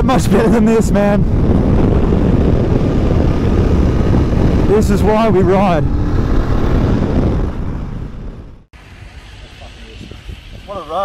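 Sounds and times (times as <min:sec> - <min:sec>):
wind rush: 0:00.0 - 0:11.0
motorcycle engine: 0:01.2 - 0:08.7.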